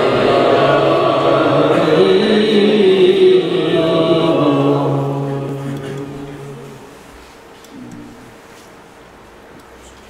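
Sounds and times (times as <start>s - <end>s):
man chanting devotional song: 0.0s - 7.0s.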